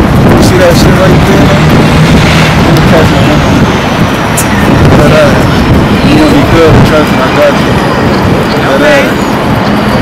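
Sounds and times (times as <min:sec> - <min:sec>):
road traffic passing: 0:00.0 - 0:10.0.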